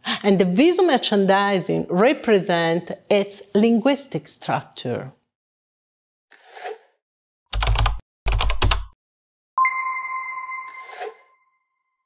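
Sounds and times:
ringing electronic tone: 9.6 - 12.0.

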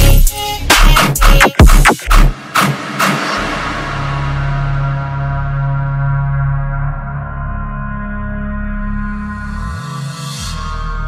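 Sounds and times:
heavy bass hit: 0.0 - 6.7.

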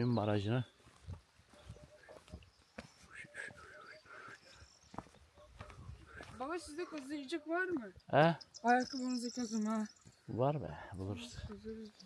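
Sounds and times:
footsteps on muddy stony track: 0.0 - 7.8.

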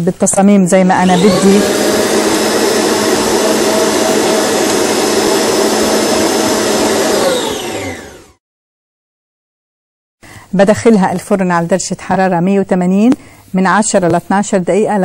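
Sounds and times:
stand mixer motor running: 1.0 - 8.4.

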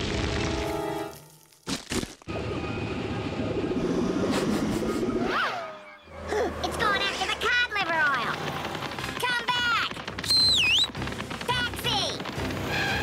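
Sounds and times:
sharp cracks: 8.2 - 13.0
whistle-like glide: 10.2 - 10.9.

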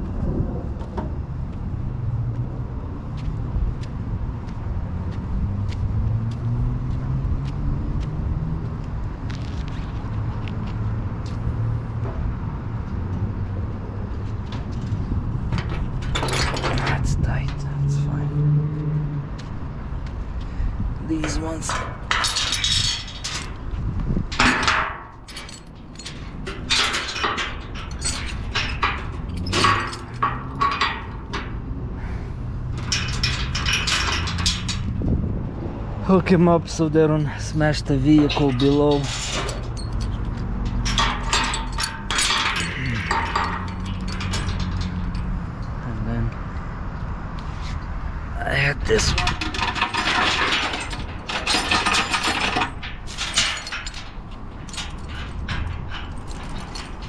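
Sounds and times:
metal clanks and rattles: 9.2 - 46.6, 47.7 - 57.0.

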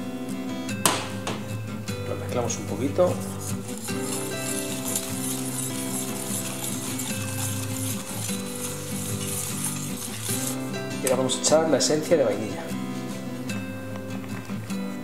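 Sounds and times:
background guitar music: 0.0 - 15.0
whisk stirring in metal bowl: 2.9 - 11.8.

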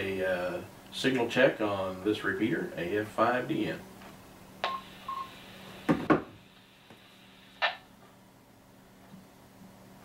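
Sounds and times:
short beeps: 4.6 - 5.4
radio hiss: 4.6 - 7.9.

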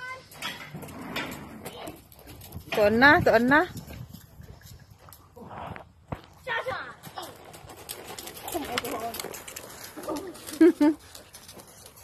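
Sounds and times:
hoofbeats on gravel: 0.8 - 12.0.

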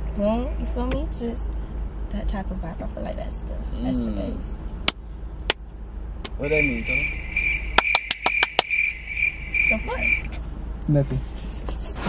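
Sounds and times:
cricket chirping: 6.4 - 10.4
sharp clicks: 7.8 - 8.9.

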